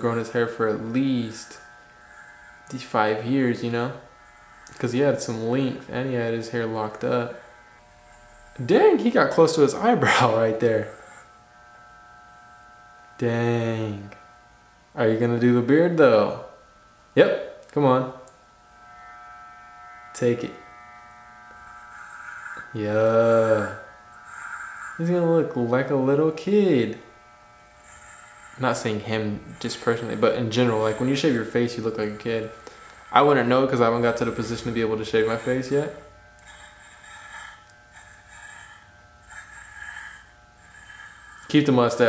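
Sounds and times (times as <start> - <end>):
clipper blades rasping through hair: 0.0 - 5.9, 6.6 - 8.7, 18.2 - 42.0
electric hair clippers buzzing: 0.0 - 42.0.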